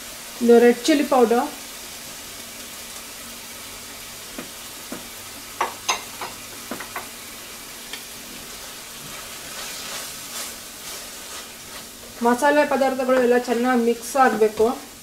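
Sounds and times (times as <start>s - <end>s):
vegetables sizzling in a frying pan: 0.0s - 15.0s
spatula stirring: 7.9s - 14.8s.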